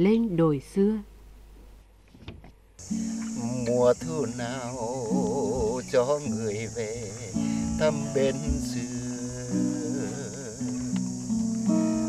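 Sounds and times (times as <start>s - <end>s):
acoustic guitar: 2.8s - 12.0s
man singing: 3.3s - 11.1s
faint clicks: 10.3s - 11.7s.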